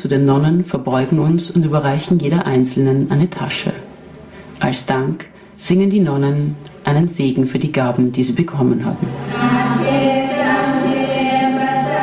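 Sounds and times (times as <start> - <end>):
group chanting in chorus: 9.0 - 12.0.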